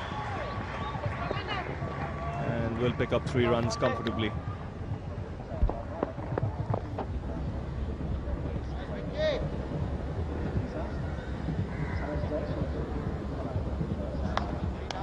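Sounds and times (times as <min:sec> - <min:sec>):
scattered clapping: 0:00.0 - 0:04.3, 0:14.3 - 0:15.0
crowd murmur: 0:00.0 - 0:15.0.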